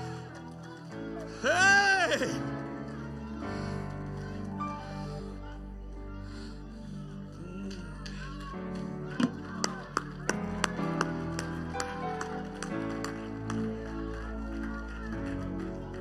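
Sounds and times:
faint voices: 0.0 - 16.0
hand claps: 7.7 - 16.0.

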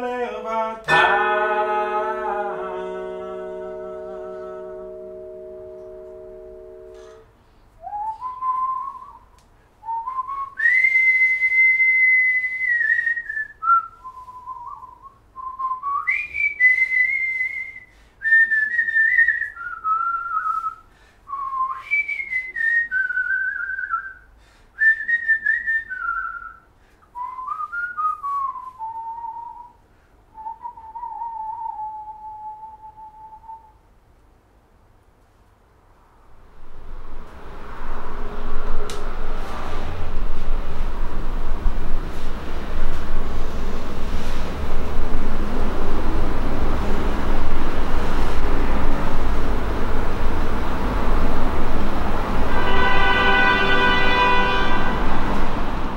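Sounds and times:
vibraphone chord: 0.9 - 7.2
man whistling a melody: 7.8 - 33.8.

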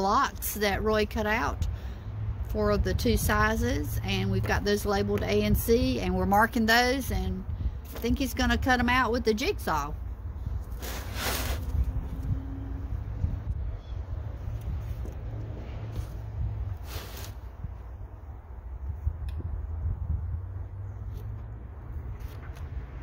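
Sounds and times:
low outdoor rumble: 0.0 - 23.0
rustling bursts: 10.6 - 12.0.

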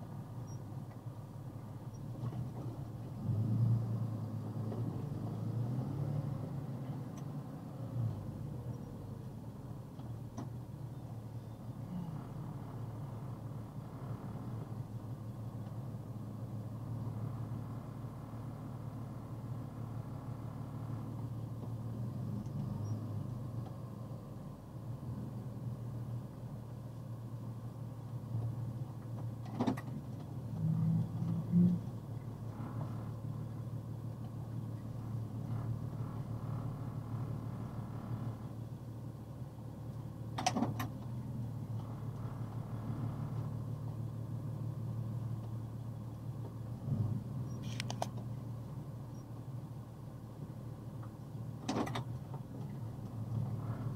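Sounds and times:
vehicle engine idling: 0.0 - 53.9.

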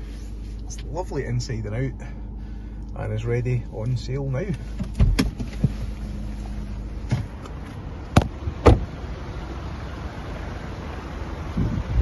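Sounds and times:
low steady hum: 0.0 - 12.0
car door opening and shutting: 4.6 - 9.0.

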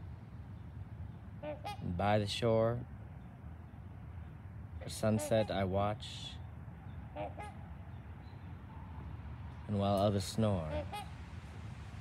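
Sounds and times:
waterfowl calls: 1.4 - 1.9, 7.1 - 7.7, 10.6 - 11.2.

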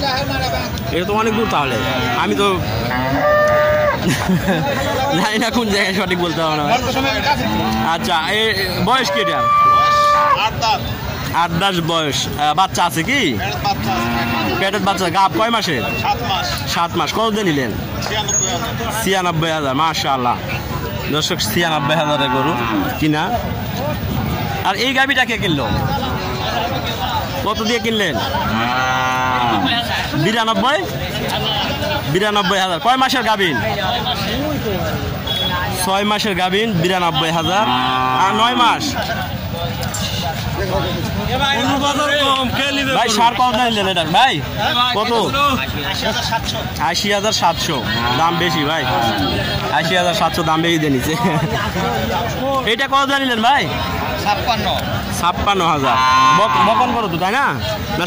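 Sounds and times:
cow mooing: 1.3 - 4.0, 7.4 - 8.4, 9.0 - 10.5, 13.8 - 14.7, 21.8 - 23.0, 28.4 - 29.8, 37.4 - 38.8, 47.8 - 49.4, 55.8 - 57.0.

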